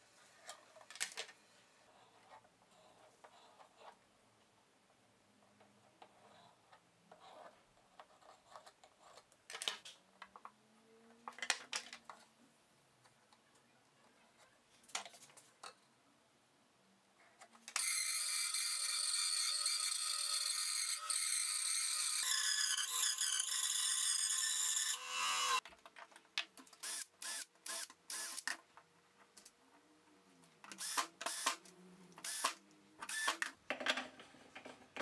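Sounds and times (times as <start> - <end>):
power saw cutting wood: 17.8 - 25.6.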